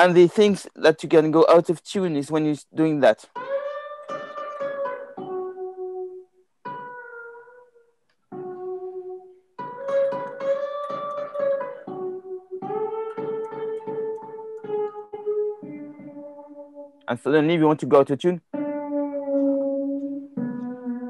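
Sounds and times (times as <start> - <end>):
fretless guitar sliding notes: 3.3 - 17.1, 18.4 - 21.0.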